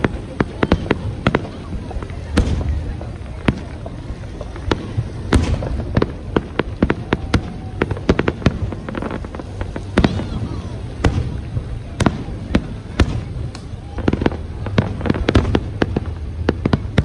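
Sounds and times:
fireworks bangs and crackles: 0.0 - 17.0.

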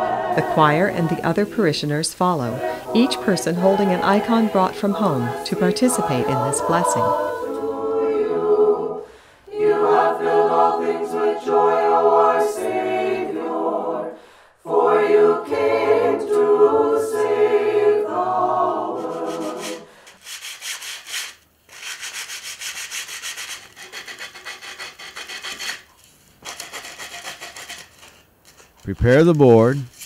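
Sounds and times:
choir singing a cappella: 0.0 - 20.0
sandpaper rubbing on wooden board: 19.0 - 30.0.

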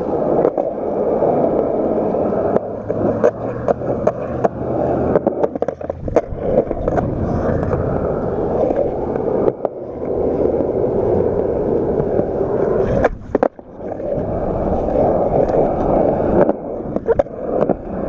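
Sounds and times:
skateboard clacks: 0.0 - 18.0
skateboard wheels rolling on concrete: 0.0 - 18.0.

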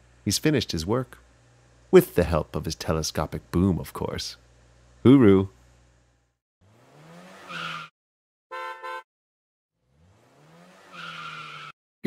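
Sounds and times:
cartoon engine revving: 6.6 - 7.9
car horn toot: 8.5 - 9.1.

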